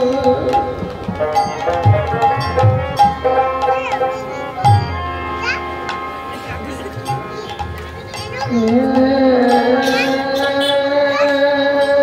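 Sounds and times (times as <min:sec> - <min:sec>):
drum strokes: 0:00.0 - 0:10.7
harmonium holding notes: 0:00.0 - 0:12.0.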